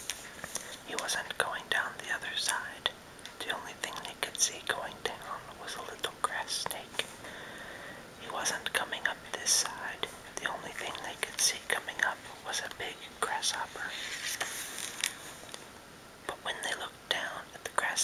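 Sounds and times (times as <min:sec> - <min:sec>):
man whispering: 0:00.8 - 0:07.2, 0:08.2 - 0:14.0, 0:16.3 - 0:18.0.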